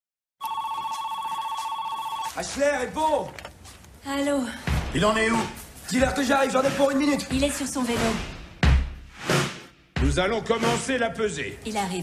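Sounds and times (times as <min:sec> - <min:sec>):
telephone ringing: 0:00.4 - 0:02.5.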